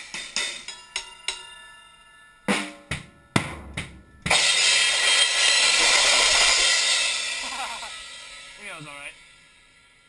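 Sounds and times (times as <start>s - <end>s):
cymbals ringing: 0.0s - 10.0s.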